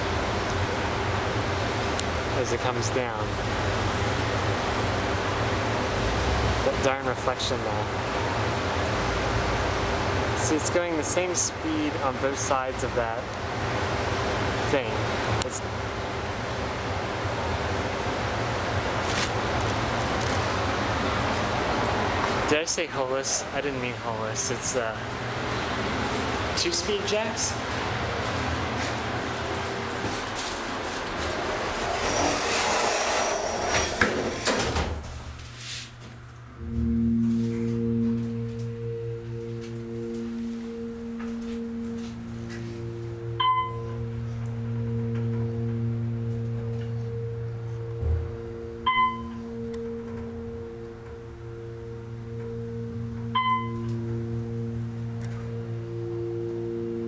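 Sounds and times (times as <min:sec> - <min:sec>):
steady background rumble: 0:00.0 - 0:31.8, 0:36.2 - 0:57.0
hydraulic elevator humming: 0:31.0 - 0:35.3, 0:36.6 - 0:57.0
elevator doors sliding shut: 0:31.1 - 0:35.3
short electronic dings: 0:36.6 - 0:56.0.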